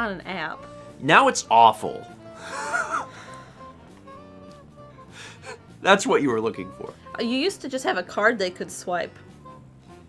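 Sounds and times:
quiet instrumental music: 0.0 - 10.0
person laughing breathily: 2.4 - 3.4.

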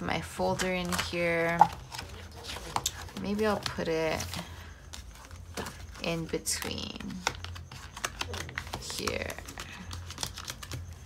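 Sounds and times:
plastic folder clicking and crinkling: 0.2 - 11.0.

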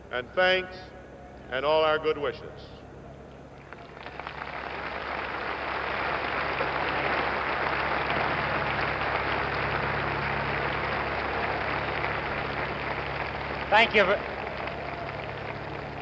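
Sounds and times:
stadium crowd applauding: 3.6 - 16.0.

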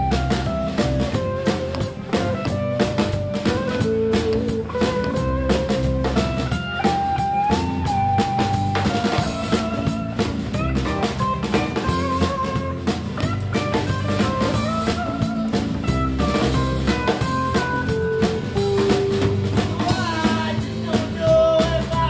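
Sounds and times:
bending lead line: 0.0 - 22.0
drum kit steady beat: 0.0 - 22.0
guitar: 0.0 - 22.0.

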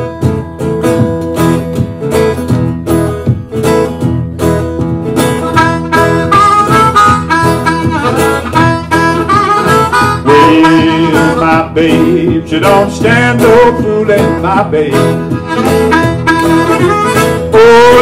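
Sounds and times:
acoustic guitar strumming: 0.0 - 18.0
harmonica bending notes: 0.0 - 18.0.

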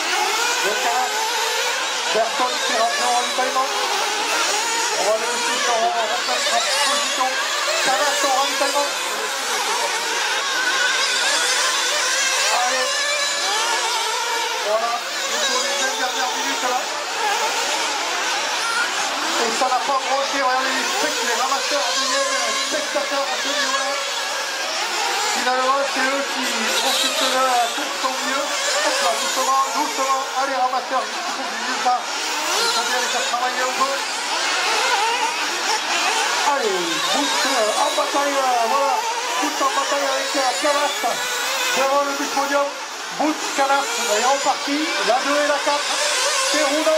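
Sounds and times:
small buggy engines racing: 0.0 - 46.9.

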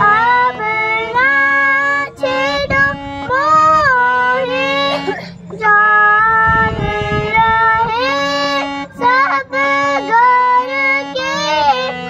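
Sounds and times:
child singing: 0.0 - 12.0
harmonium accompaniment: 0.0 - 12.0.

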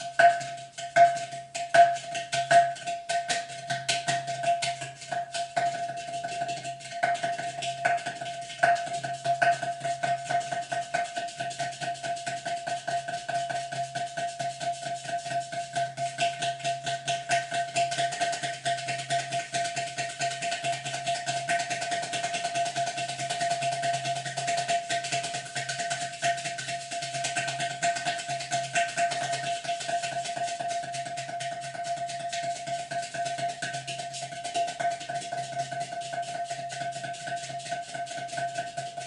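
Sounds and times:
clay pot drum played by hand: 0.0 - 39.0.

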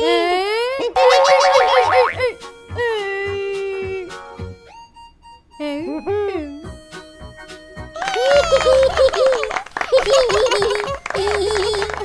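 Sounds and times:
fast wobbling boing: 1.5 - 2.3.

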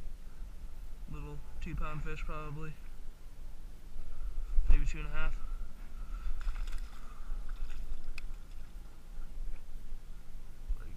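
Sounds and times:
small crackles: 6.2 - 8.8.

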